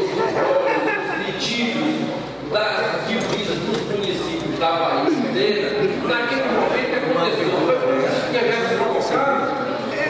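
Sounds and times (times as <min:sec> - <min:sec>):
man speaking: 0:01.0 - 0:10.0.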